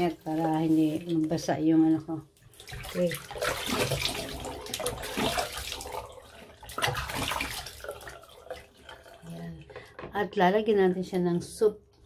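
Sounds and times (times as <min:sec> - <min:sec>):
water splashing face washing: 0:00.0 - 0:01.5, 0:02.4 - 0:09.6
tap water running into sink: 0:02.4 - 0:10.4.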